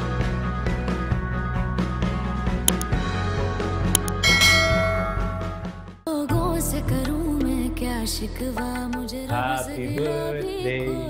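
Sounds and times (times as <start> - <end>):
sharp click: 2.7 - 2.9, 4.0 - 4.2
intro music: 4.0 - 6.0
bright bell chime: 4.2 - 5.7.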